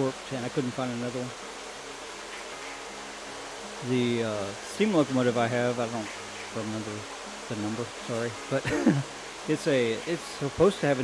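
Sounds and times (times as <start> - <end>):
man talking: 0.0 - 1.4, 3.8 - 11.0.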